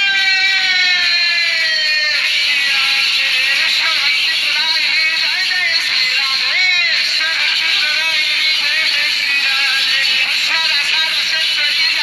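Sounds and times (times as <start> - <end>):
devotional chanting music: 0.0 - 12.0.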